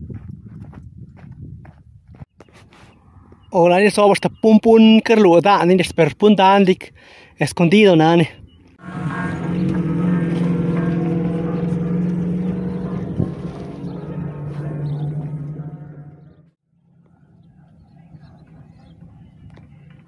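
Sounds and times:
faint outdoor background: 0.9 - 20.0
vehicle engine droning: 8.5 - 20.0.

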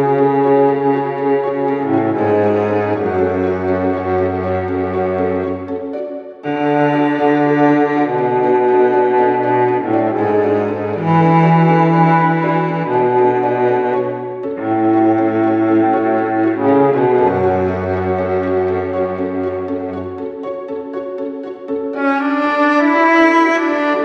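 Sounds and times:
slow held chords: 0.0 - 24.0.

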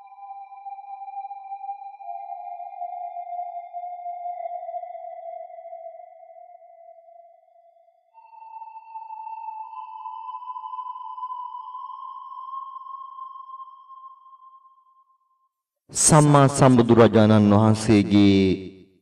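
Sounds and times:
electronic music held tones: 0.0 - 7.5, 8.1 - 14.7.

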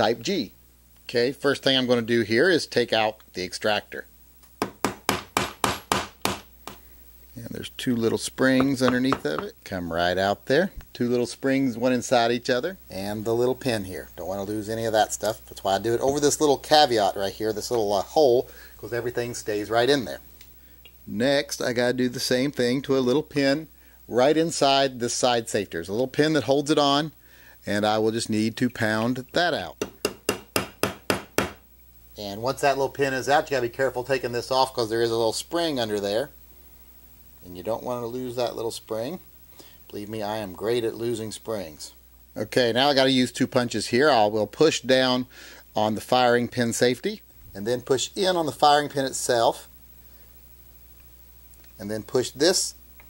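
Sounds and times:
hammer tapping a pin punch: 4.6 - 6.8, 29.8 - 31.6.

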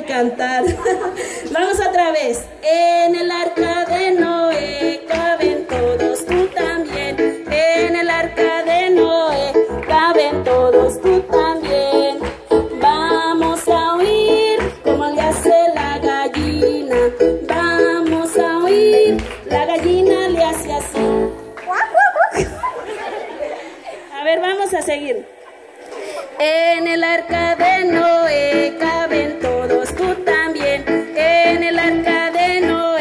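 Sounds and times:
woman singing into microphone: 0.0 - 21.4, 26.4 - 33.0
electronic keyboard beat: 3.4 - 21.8, 27.3 - 33.0.

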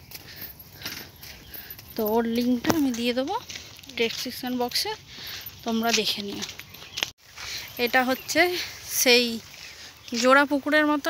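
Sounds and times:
footsteps on dirt path: 0.0 - 11.0.

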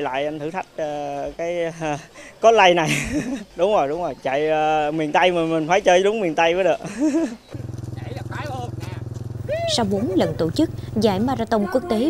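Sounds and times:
man laughing: 2.8 - 3.6, 6.8 - 7.5
pulsing low drone: 7.5 - 12.0.

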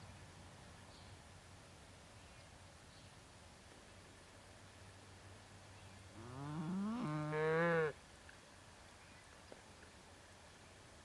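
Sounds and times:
cow mooing: 6.2 - 7.9.

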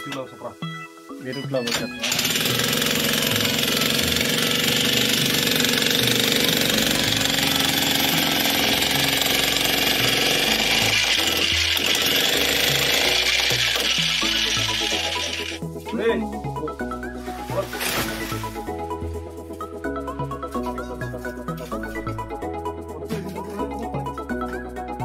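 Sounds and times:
electric breaker hammer chiselling: 2.0 - 15.6.

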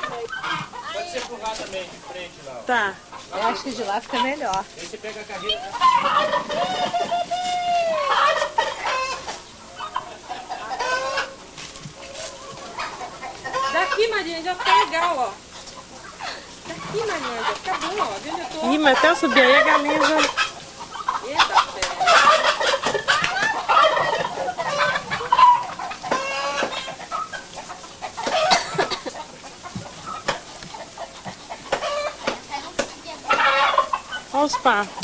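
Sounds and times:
poultry calling: 0.0 - 35.0.

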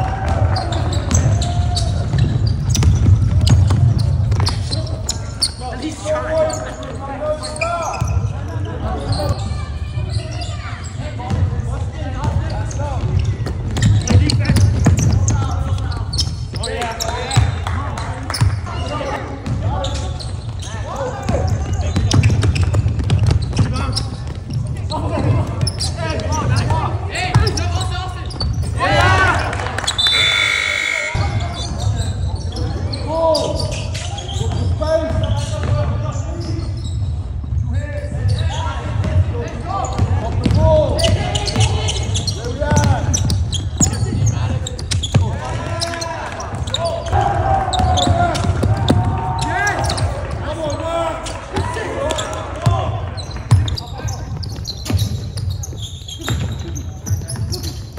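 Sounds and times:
voices echoing in gym: 0.0 - 57.9
basketball bouncing on hardwood: 1.0 - 4.7, 21.3 - 24.6.

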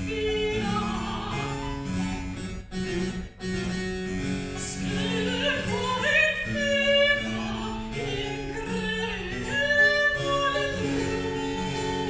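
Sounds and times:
woman singing classical style: 0.0 - 2.1, 4.6 - 12.0.

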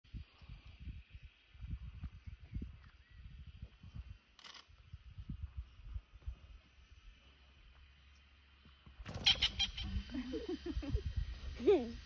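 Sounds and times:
bird alarm cackle: 9.1 - 10.7.

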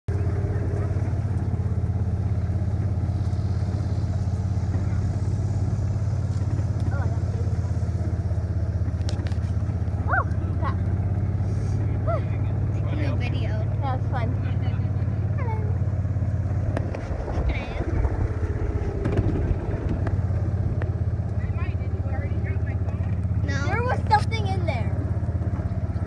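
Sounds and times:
vehicle engine droning: 0.0 - 26.0.

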